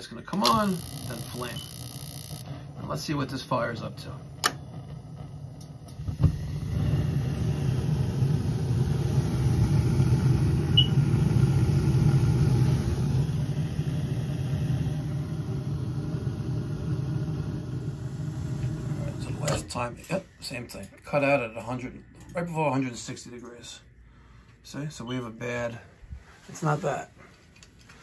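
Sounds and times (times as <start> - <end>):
gas burner rumble: 0.0 - 21.8
boiler ignition click: 0.3 - 2.5, 4.0 - 13.0, 16.8 - 19.8.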